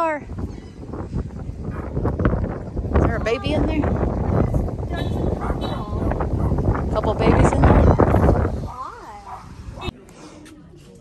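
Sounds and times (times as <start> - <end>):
loud outdoor noise: 0.0 - 11.0.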